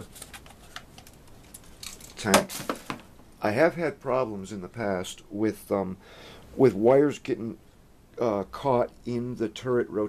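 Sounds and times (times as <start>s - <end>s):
plastic toy parts clicking and rattling: 1.0s - 2.9s.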